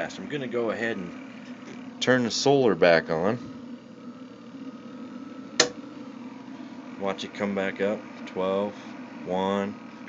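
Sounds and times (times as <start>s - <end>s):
cooling fan running: 0.0s - 10.0s
inverter humming: 0.0s - 10.0s.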